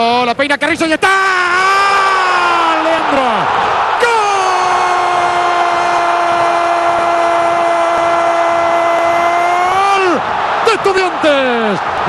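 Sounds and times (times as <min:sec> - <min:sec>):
commentator's long shouted goal cry: 0:01.1 - 0:11.9
stadium crowd cheering: 0:01.2 - 0:12.0.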